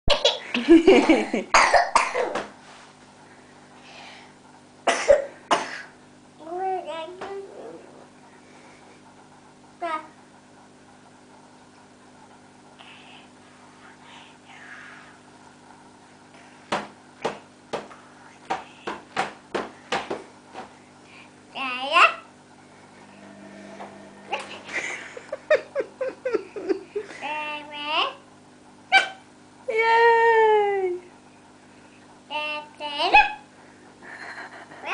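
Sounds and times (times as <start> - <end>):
person coughing: 1.5 - 2.4, 4.9 - 5.9.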